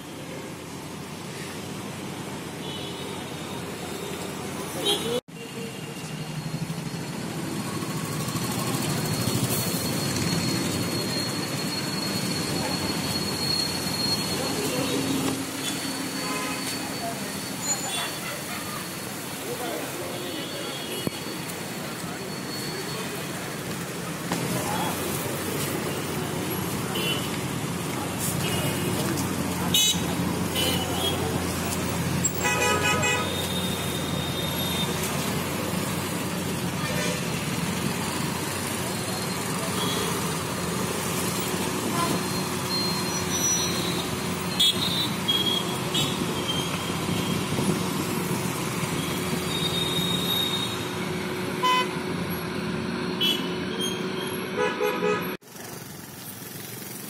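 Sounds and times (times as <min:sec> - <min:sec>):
traffic engines running: 0:00.0 - 0:57.0
vehicle horns honking: 0:14.9 - 0:17.0, 0:26.9 - 0:27.4, 0:29.7 - 0:31.4, 0:32.3 - 0:35.0, 0:43.4 - 0:47.4, 0:51.6 - 0:52.0, 0:53.2 - 0:55.4.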